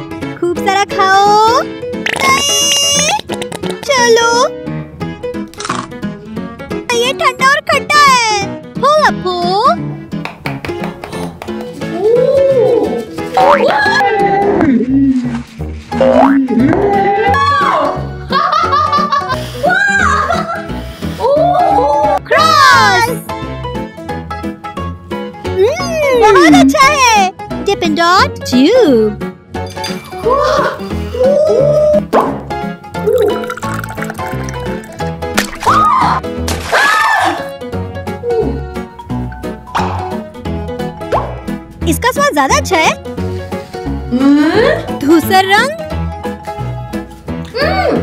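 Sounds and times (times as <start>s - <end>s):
upbeat background music: 0.0s - 48.0s.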